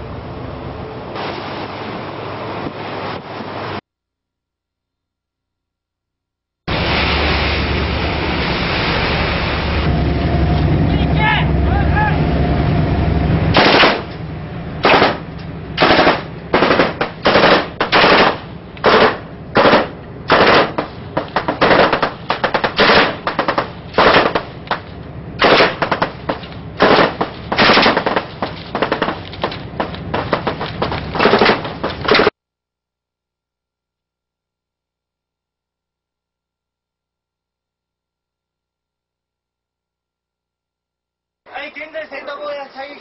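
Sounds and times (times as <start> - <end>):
boat and sea rumble: 0.0 - 3.8, 6.7 - 32.3
automatic gunfire bursts: 13.6 - 14.1, 14.8 - 24.5, 25.4 - 32.3.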